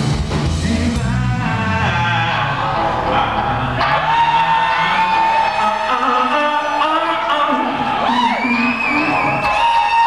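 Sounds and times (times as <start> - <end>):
live rock band playing: 0.0 - 10.0
crowd cheering: 1.0 - 10.0.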